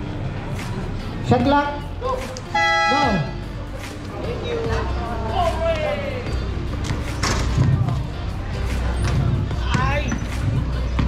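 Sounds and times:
background music: 0.0 - 11.0
crowd voices: 0.0 - 11.0
basketballs bouncing on concrete: 9.0 - 11.0.

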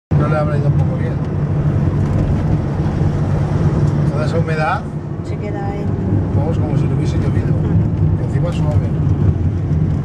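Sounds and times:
car engine drone: 0.1 - 10.0
road noise rushing: 0.1 - 10.0.

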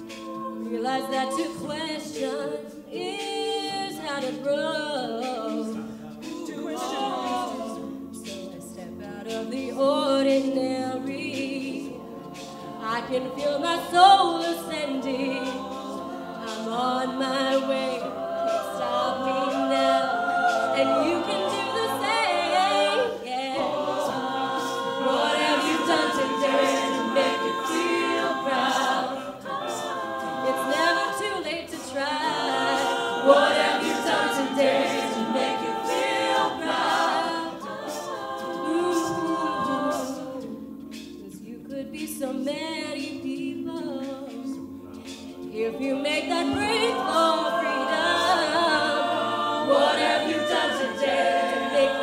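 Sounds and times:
backing vocal harmonies: 0.0 - 52.0
woman singing lead: 0.0 - 52.0.

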